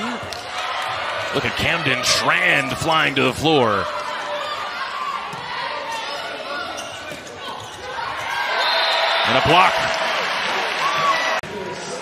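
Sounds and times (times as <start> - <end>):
crowd noise in arena: 0.0 - 12.0.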